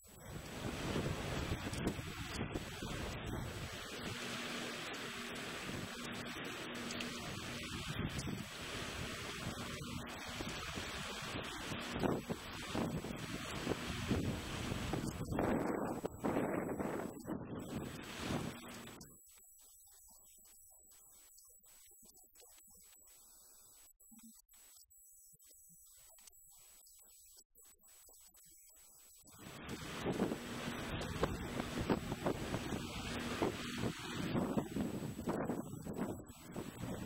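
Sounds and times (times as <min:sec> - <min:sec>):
waves slapping and splashing: 0:00.0 - 0:19.1, 0:29.3 - 0:37.0
wind buffeting microphone: 0:00.2 - 0:19.0, 0:29.4 - 0:37.0.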